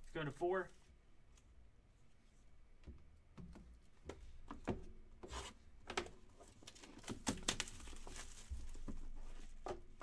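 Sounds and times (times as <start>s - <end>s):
plastic wrap crinkling: 6.6s - 8.9s.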